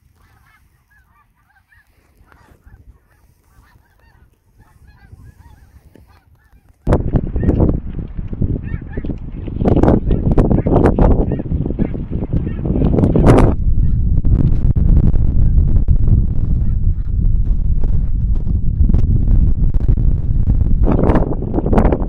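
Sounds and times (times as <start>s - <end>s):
geese honking: 0.0s - 7.8s, 8.5s - 13.2s
wind rumble on microphone: 0.0s - 22.0s.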